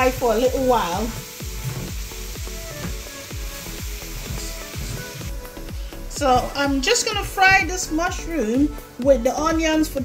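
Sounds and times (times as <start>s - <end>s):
vegetables sizzling in skillet: 0.0s - 8.5s
background music with beat: 0.0s - 10.0s.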